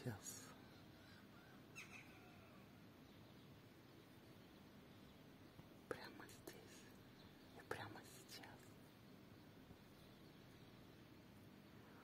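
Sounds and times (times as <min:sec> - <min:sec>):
person whispering: 0:05.9 - 0:08.8.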